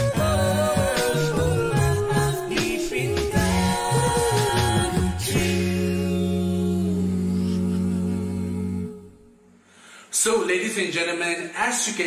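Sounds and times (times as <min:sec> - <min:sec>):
a cappella group singing: 0:00.0 - 0:09.7.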